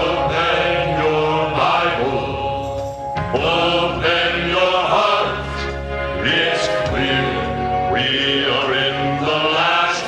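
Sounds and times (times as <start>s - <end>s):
male group singing gospel: 0.0s - 10.0s.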